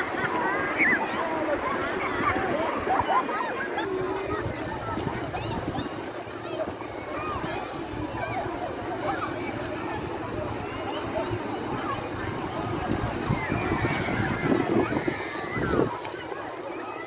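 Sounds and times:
surf washing: 0.0 - 17.0.

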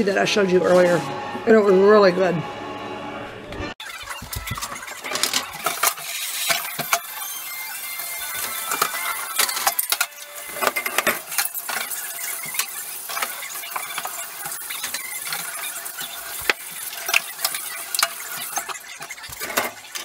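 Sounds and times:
running tap water: 3.8 - 20.0
dishes and cutlery clattering: 8.4 - 20.0.

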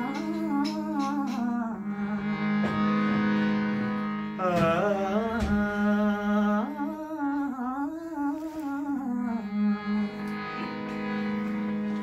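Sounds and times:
harmonium drone: 0.0 - 12.0
man singing wordless phrase: 4.4 - 9.4.

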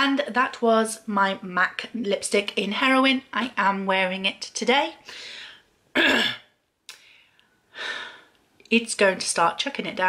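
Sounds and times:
woman clearing her throat: 6.0 - 6.6.

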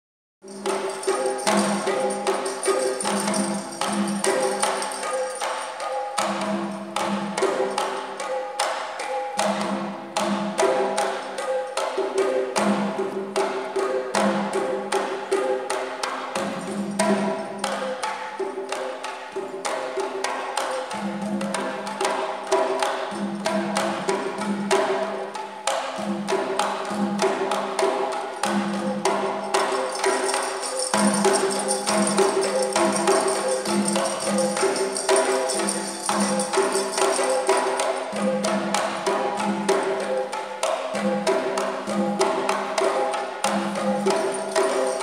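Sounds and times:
drums playing fast rhythm: 0.4 - 8.0, 16.3 - 18.0, 26.9 - 40.0, 43.4 - 45.0.

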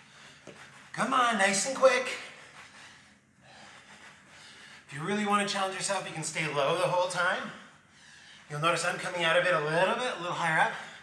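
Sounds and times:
man breathing hard: 0.0 - 0.9, 2.3 - 4.9, 7.5 - 8.5, 10.7 - 11.0
man speaking: 1.0 - 2.4, 4.9 - 7.7, 8.5 - 11.0.

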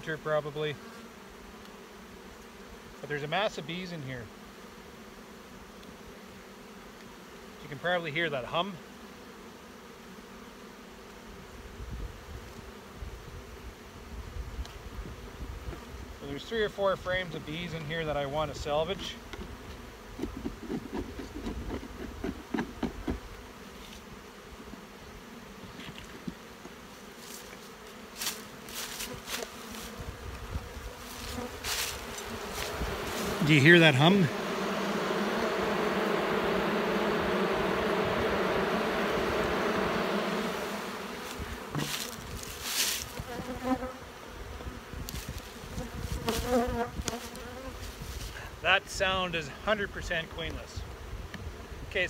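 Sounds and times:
honey bees humming: 0.0 - 52.0.

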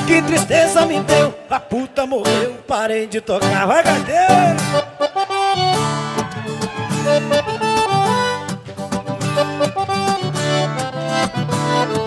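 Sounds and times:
accordion melody: 0.0 - 1.4, 3.8 - 12.0
strummed acoustic guitars: 0.0 - 12.0.

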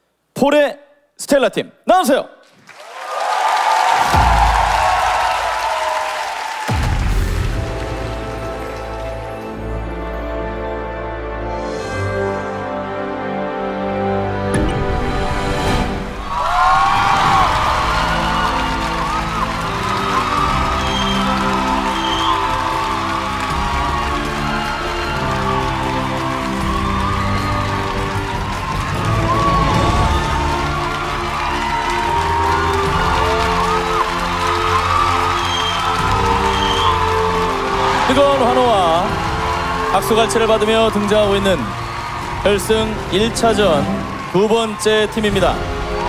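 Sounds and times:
audience cheering and applauding: 2.4 - 10.4, 15.4 - 46.0
dramatic entrance music: 3.8 - 46.0.

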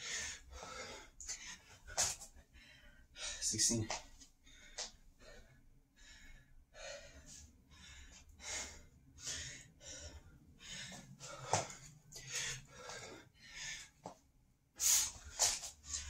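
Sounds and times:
man breathing hard: 0.0 - 16.0.

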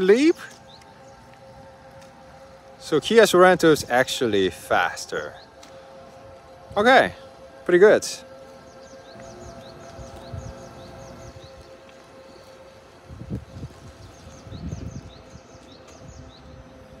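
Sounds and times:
steady hum: 0.0 - 17.0
low microphone rumbles: 8.3 - 16.6.

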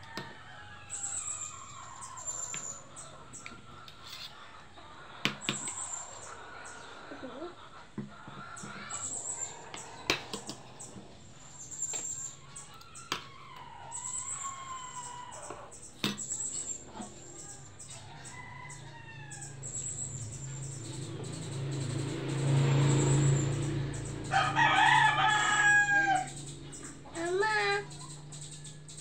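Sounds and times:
drawn-out bird calls: 0.9 - 29.0.

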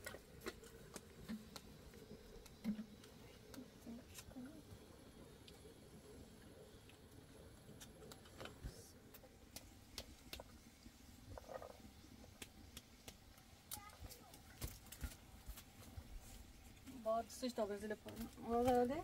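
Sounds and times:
small clicks and crackles: 0.0 - 19.0.

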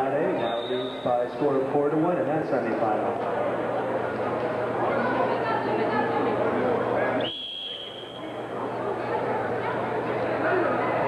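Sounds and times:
background chatter: 0.0 - 11.0
referee's whistle blast: 7.2 - 8.2.

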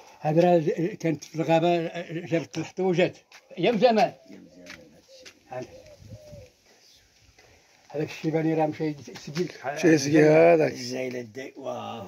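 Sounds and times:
dove cooing faintly: 3.1 - 7.1.

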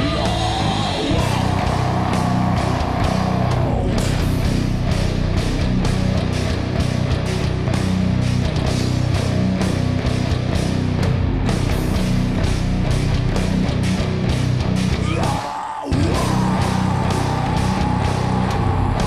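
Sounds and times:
bass guitar: 0.0 - 19.0
distorted electric guitars: 0.0 - 19.0
hard-hitting drums: 0.0 - 19.0.

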